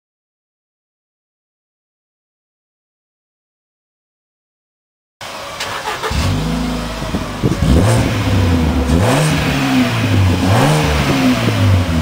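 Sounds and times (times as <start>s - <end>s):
car engine exhaust note: 6.0s - 12.0s.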